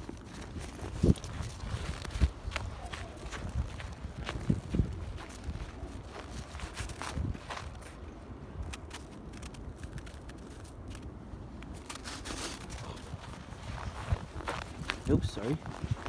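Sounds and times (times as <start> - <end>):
footsteps crunching in snow: 0.0 - 16.0.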